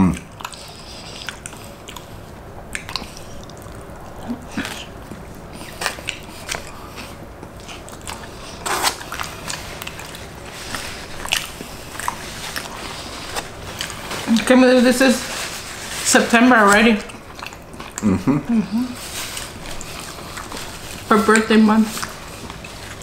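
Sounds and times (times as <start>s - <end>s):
people chewing food: 0.0s - 23.0s
wet mouth clicks and smacks: 0.1s - 2.1s, 2.7s - 6.7s.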